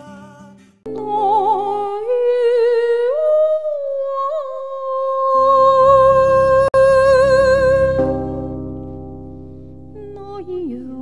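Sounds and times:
woman singing wordless melody: 0.0s - 8.7s, 9.9s - 11.0s
backing accompaniment: 5.8s - 10.8s.

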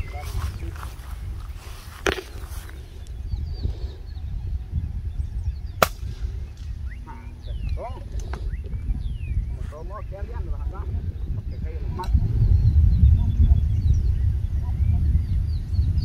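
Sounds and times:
bird chirps: 0.0s - 10.5s
wind rumbling on microphone: 0.0s - 16.0s
sharp gunshot: 5.8s - 6.2s.

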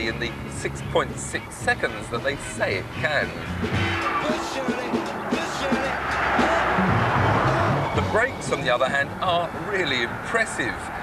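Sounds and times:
background music: 0.0s - 10.0s
car passing close by: 3.3s - 11.0s.

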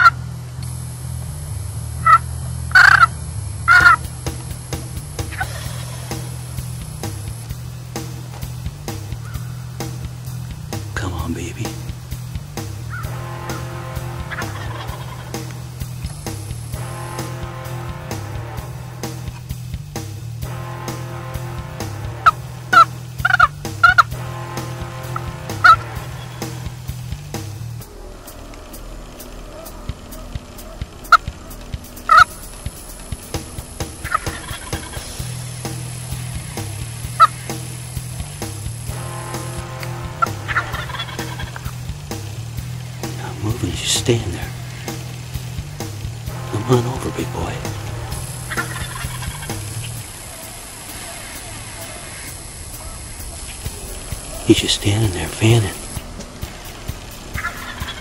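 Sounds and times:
steady low background noise: 0.0s - 58.0s
turkey gobbling: 2.0s - 6.8s, 9.0s - 10.4s, 12.8s - 19.4s, 20.6s - 27.1s, 27.8s - 45.6s, 46.2s - 58.0s.

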